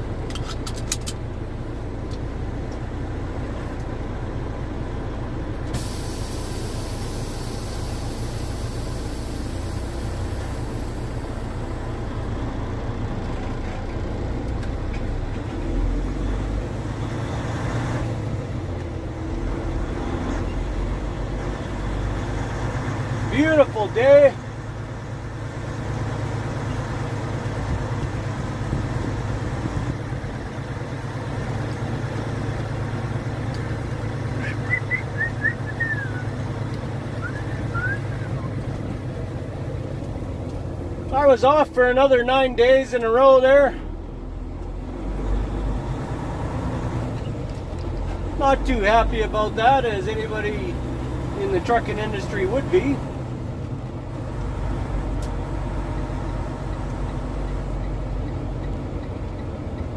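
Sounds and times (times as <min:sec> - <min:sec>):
diesel engine droning: 0:00.0 - 0:59.9
air hiss: 0:05.7 - 0:11.6.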